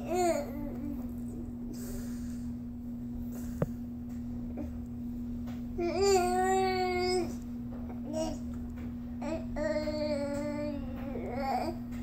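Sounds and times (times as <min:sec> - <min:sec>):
steady hum: 0:00.0 - 0:12.0.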